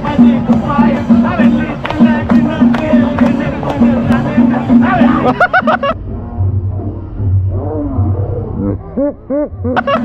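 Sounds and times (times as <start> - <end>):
low rumble: 5.8 - 9.1.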